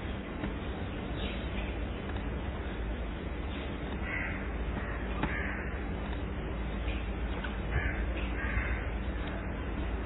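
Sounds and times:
harsh bird calls: 0.0 - 10.0
low background hum: 0.0 - 10.0.

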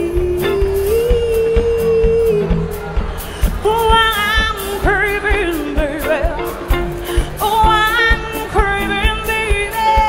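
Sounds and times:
drum beat: 0.0 - 10.0
electric guitar: 0.0 - 10.0
woman singing: 0.0 - 10.0.

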